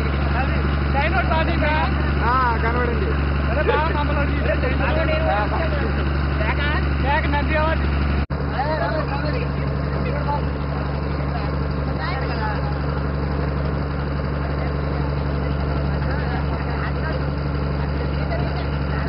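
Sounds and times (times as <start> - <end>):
boat motor droning: 0.0 - 19.0
people talking: 0.0 - 19.0.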